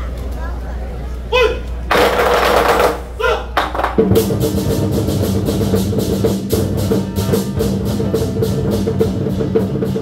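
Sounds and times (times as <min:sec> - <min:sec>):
drummers shouting: 0:01.3 - 0:03.9
barrel drums rolling: 0:01.9 - 0:10.0.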